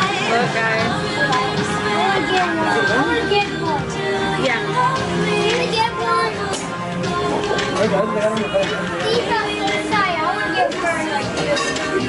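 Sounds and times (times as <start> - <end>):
background music: 0.0 - 12.0
high children's voices: 1.3 - 4.0, 4.6 - 6.7, 8.9 - 11.9.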